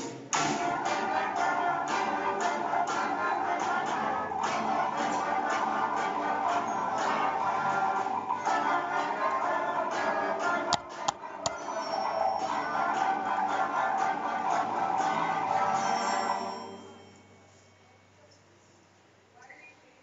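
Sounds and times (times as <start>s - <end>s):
concert band playing: 0.0s - 16.8s.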